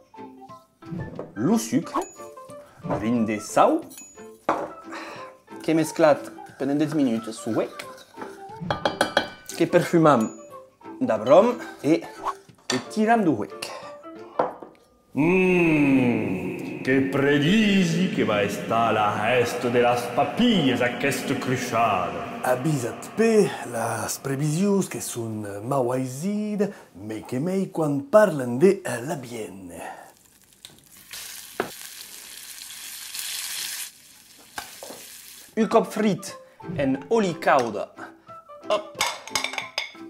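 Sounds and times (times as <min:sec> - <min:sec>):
man humming with relish: 0:15.2 - 0:24.4
food frying in hot oil: 0:30.1 - 0:35.6.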